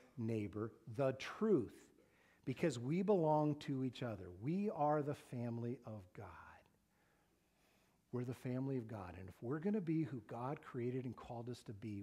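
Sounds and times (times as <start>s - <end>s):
man speaking: 0.0s - 6.7s, 8.1s - 12.0s.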